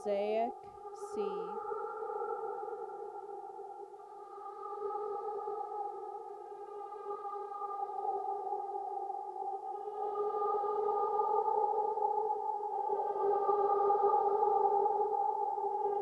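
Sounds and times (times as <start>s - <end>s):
faint high overtones: 0.0s - 11.7s.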